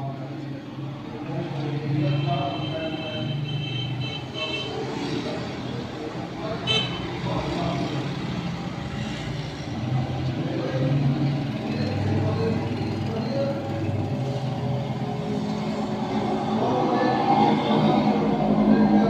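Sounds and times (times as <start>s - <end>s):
road traffic: 0.0s - 19.0s
vehicle horns tooting: 2.1s - 4.8s, 6.6s - 7.2s.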